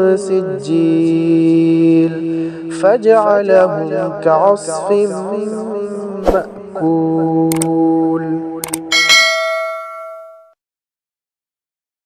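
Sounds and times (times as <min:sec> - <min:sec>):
bright bell ding: 0:08.9 - 0:10.6.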